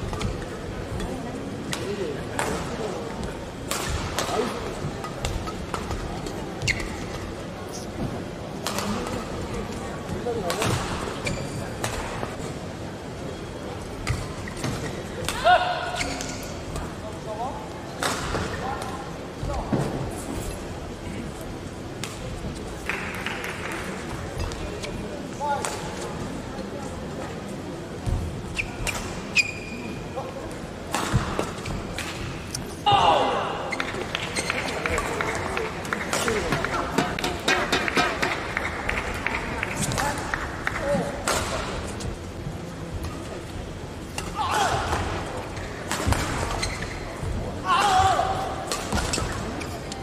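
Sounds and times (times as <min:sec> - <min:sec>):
indoor arena hum: 0:00.0 - 0:50.0
shoes squeaking on court: 0:06.5 - 0:07.3, 0:15.9 - 0:16.5, 0:28.5 - 0:30.0, 0:33.7 - 0:34.8, 0:46.4 - 0:47.2.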